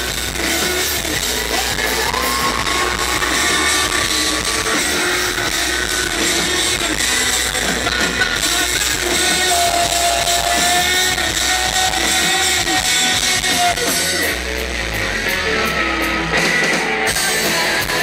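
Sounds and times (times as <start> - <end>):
drums: 0.0 - 18.0
electric guitar: 0.0 - 18.0
keyboards: 0.0 - 18.0.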